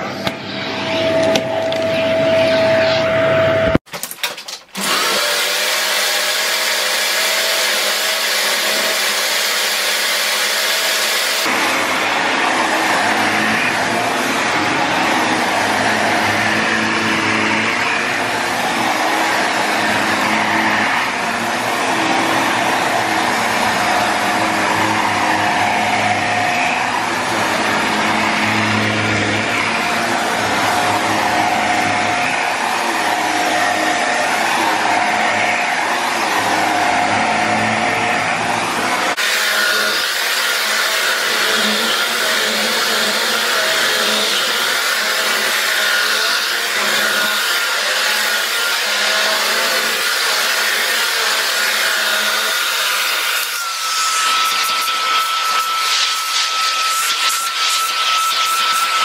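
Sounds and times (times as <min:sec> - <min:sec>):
vacuum cleaner on carpet: 0:04.8 - 0:59.0.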